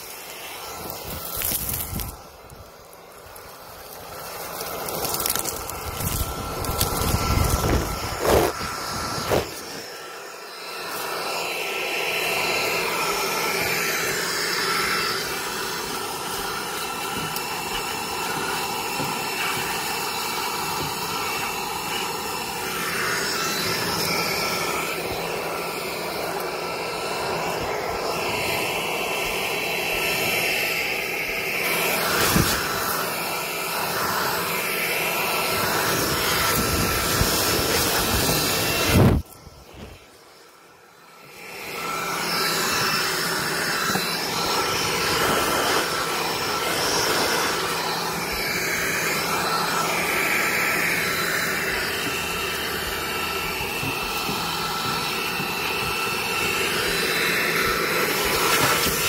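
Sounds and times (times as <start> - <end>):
leaf blower running: 0.0 - 59.0.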